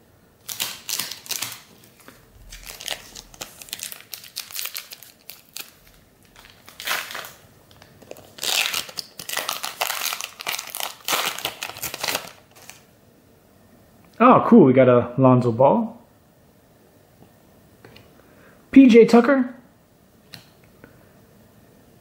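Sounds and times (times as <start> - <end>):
plastic wrapper crinkling and tearing: 0.4 - 12.8.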